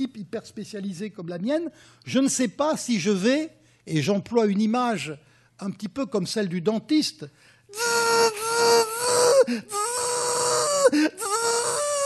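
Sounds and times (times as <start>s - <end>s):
man imitating a drill whine: 7.7s - 12.0s.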